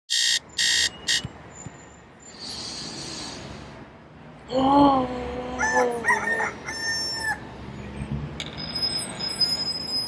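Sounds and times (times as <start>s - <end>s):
electronic buzzer beeps: 0.1s - 1.3s.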